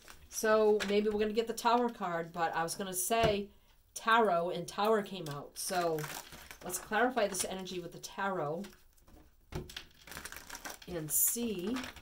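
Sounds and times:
cards being shuffled: 0:08.6 - 0:12.0.

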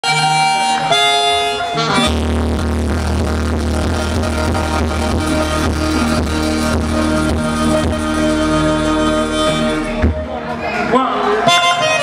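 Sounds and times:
button accordion chords: 0:00.0 - 0:10.5
band with bass and percussion: 0:00.0 - 0:12.0.

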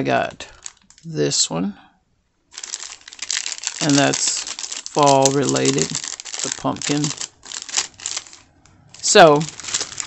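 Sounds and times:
plastic packaging crinkling: 0:00.5 - 0:01.1, 0:02.5 - 0:10.0.

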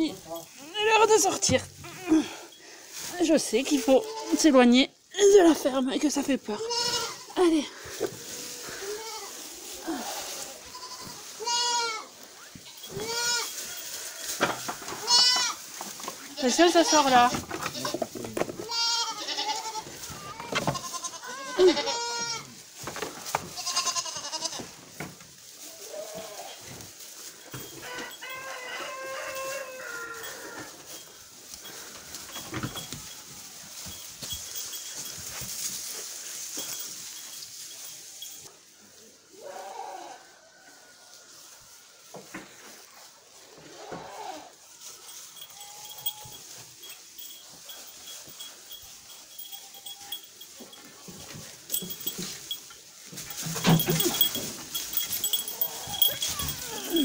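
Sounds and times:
goats bleating: 0:06.5 - 0:07.5, 0:08.4 - 0:12.2, 0:12.8 - 0:22.6, 0:23.4 - 0:24.7, 0:53.5 - 0:57.0.

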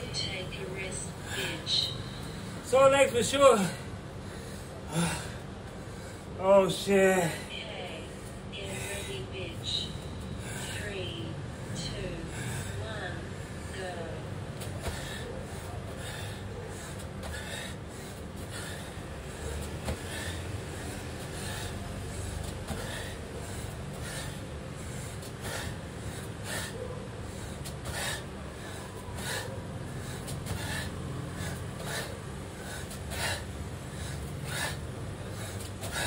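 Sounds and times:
steady low rumble: 0:00.0 - 0:36.0
man breathing hard in gasps: 0:04.1 - 0:06.4, 0:14.7 - 0:36.0.

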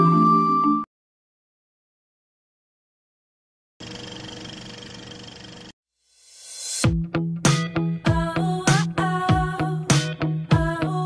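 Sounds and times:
film projector whirring: 0:03.8 - 0:05.7.

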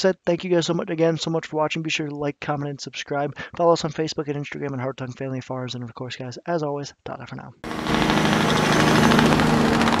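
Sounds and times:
steady engine hum: 0:07.7 - 0:10.0.

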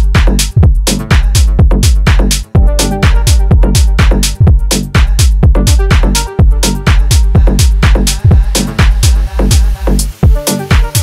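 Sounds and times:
deep bass: 0:00.0 - 0:11.0
hi-hat hits: 0:00.0 - 0:11.0
kick drum: 0:00.0 - 0:11.0.

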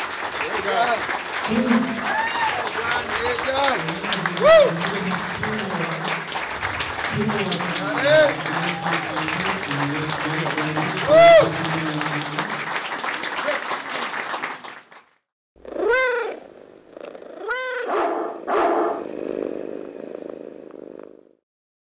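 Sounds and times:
crowd applauding and cheering: 0:00.0 - 0:15.1
cat meowing: 0:15.7 - 0:16.4, 0:17.4 - 0:18.0
dog barking: 0:17.5 - 0:19.0.

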